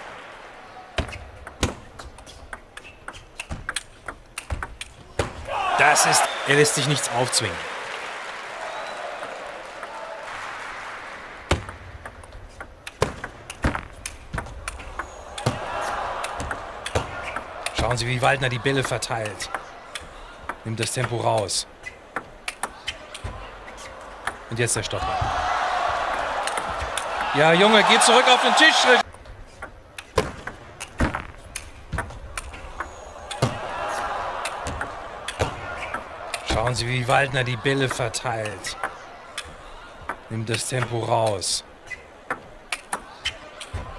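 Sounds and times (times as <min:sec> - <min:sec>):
crowd noise in a hall: 0:00.0 - 0:43.9.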